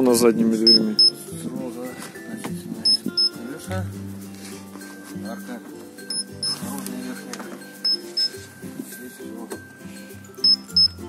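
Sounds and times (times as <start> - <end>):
music bed: 0.0 - 11.0
short high beeps: 0.7 - 1.2, 2.9 - 3.3, 6.1 - 6.6, 7.9 - 8.4, 10.4 - 11.0.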